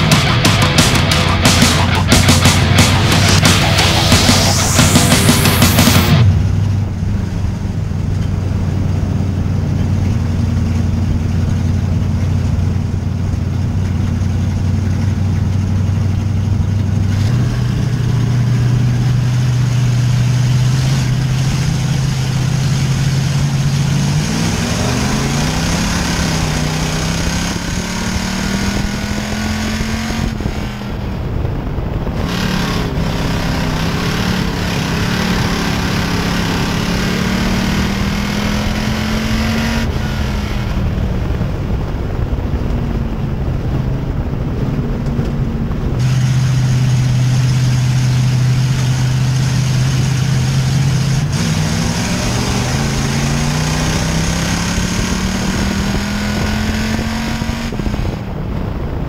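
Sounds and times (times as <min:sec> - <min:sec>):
race car engine: 0:00.0 - 0:59.0.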